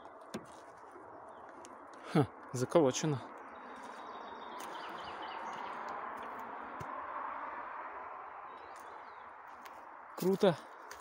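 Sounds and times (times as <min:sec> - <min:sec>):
bird chirping: 0:00.0 - 0:06.9, 0:08.4 - 0:09.6.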